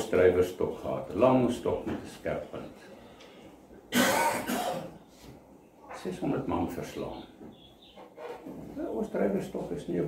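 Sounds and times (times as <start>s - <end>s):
man coughing: 3.9s - 5.0s.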